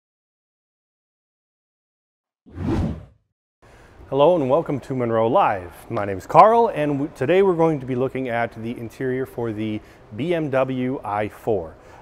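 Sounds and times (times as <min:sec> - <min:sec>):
whoosh sound effect: 0:02.5 - 0:03.1
faint room hiss: 0:03.6 - 0:12.0.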